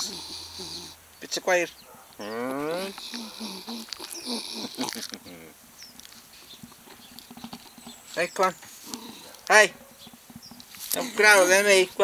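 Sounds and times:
dog sniffing and snuffling: 6.2s - 10.2s.

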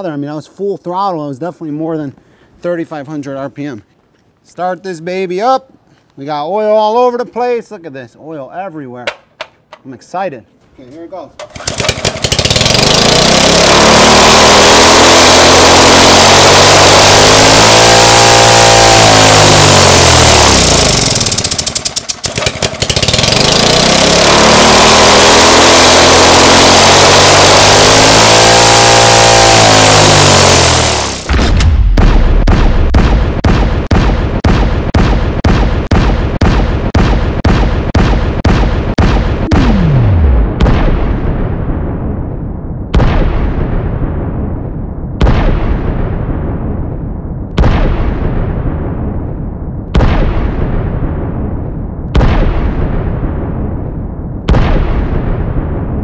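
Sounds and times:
lawn-mower engine revving: 11.4s - 31.5s, 39.5s - 40.5s
slowed engine firing bangs: 11.4s - 56.0s.

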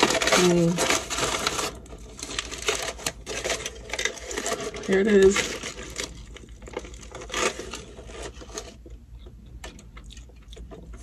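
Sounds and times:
aluminium foil crinkling: 0.0s - 9.0s.

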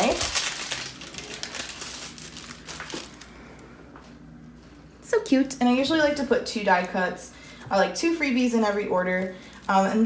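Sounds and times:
plastic packet crinkling: 0.0s - 3.3s, 8.6s - 10.0s.

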